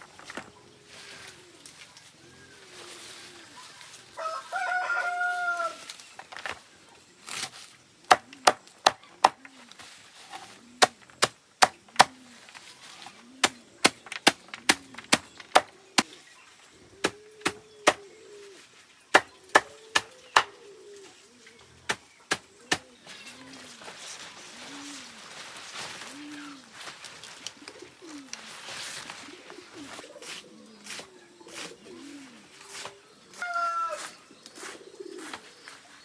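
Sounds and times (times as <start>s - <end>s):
rooster crowing: 4.2s - 5.9s, 33.3s - 34.2s.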